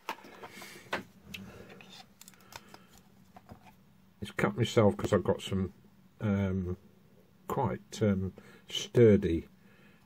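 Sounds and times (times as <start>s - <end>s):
plastic parts clicking and knocking: 1.7s - 3.7s.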